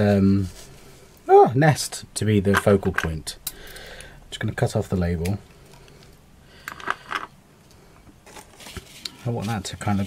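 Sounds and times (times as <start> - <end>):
rustle of dry twigs and paper: 8.3 - 10.0.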